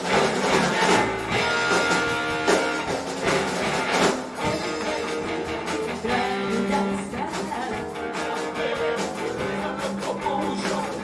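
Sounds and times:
drums with steady beat: 0:00.0 - 0:11.0
electric guitars: 0:00.0 - 0:11.0.

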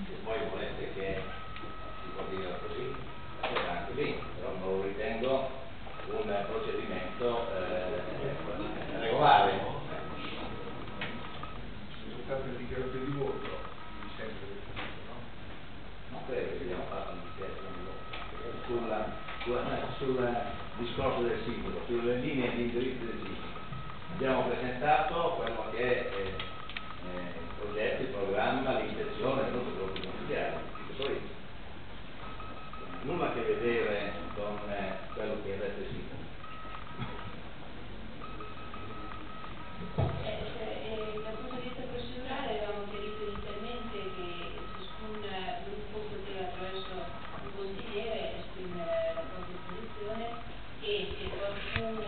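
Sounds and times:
low talk in a room: 0:00.0 - 0:52.0
thin electronic tone: 0:00.0 - 0:52.0.

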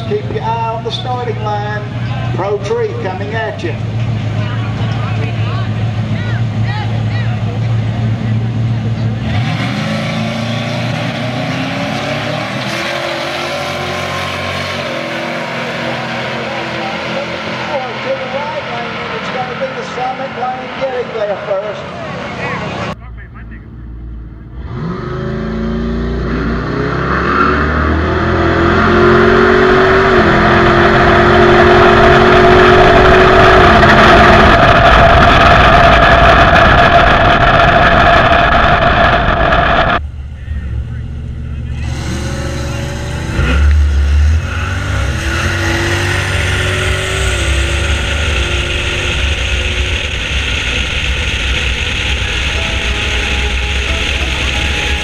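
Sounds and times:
car engine at full throttle: 0:00.0 - 0:55.0.

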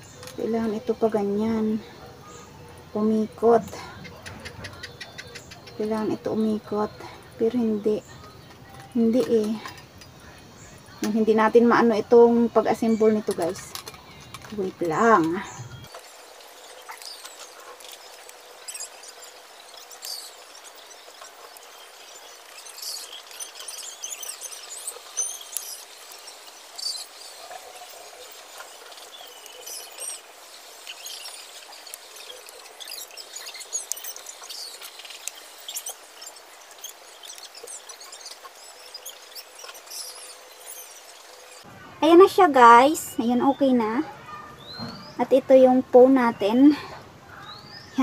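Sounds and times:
faint bird chirps: 0:00.0 - 0:48.0.

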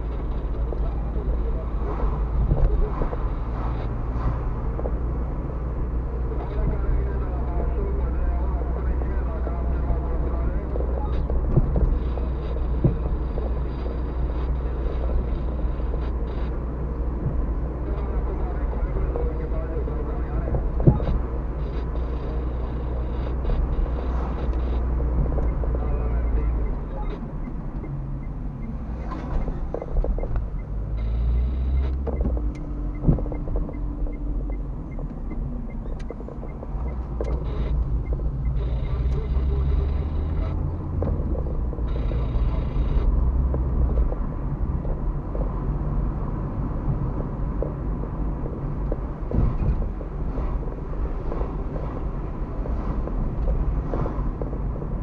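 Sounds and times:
car engine and tyre rumble: 0:00.0 - 0:55.0
road knocks: 0:10.6 - 0:13.6, 0:20.3 - 0:21.4, 0:31.8 - 0:39.2, 0:40.1 - 0:41.9, 0:43.0 - 0:55.0
faint regular ticking: 0:17.2 - 0:55.0.

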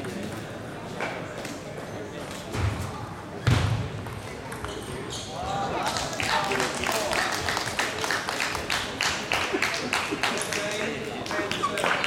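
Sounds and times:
spectators' voices in a hall: 0:00.0 - 0:12.0.

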